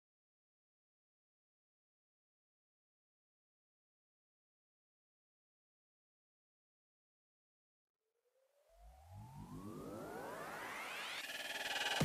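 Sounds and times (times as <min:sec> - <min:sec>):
synthesizer riser: 0:08.6 - 0:12.0
electronic music track: 0:08.7 - 0:12.0.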